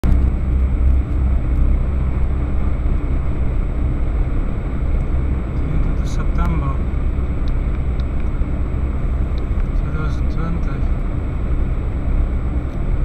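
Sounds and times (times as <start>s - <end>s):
car engine and tyre rumble: 0.0s - 13.0s.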